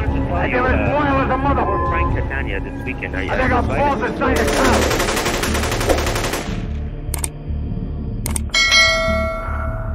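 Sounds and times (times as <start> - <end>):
rapid machine-gun fire: 4.4 - 6.8.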